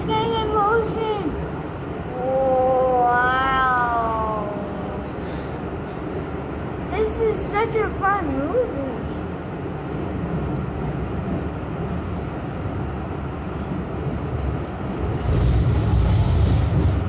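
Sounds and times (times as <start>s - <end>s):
subway train rumbling in tunnel: 0.0s - 17.0s
wheels hissing on rails: 0.0s - 17.0s.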